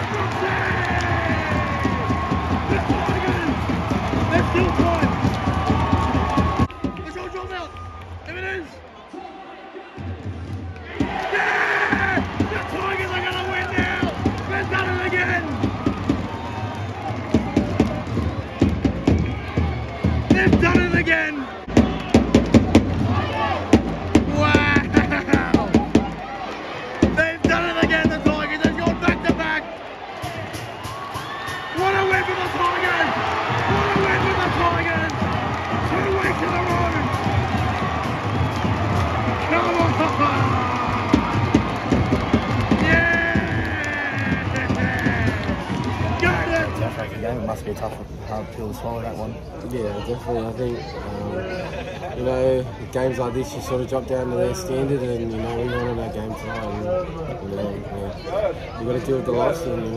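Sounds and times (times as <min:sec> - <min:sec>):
sharp claps: 0:00.0 - 0:08.4, 0:23.8 - 0:46.8
stadium crowd cheering and shouting: 0:00.0 - 0:59.9
music over stadium speakers: 0:30.2 - 0:46.9.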